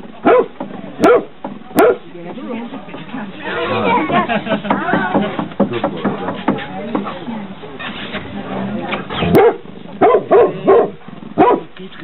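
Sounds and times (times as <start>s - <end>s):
dog barking: 0.2s - 2.0s, 9.3s - 11.7s.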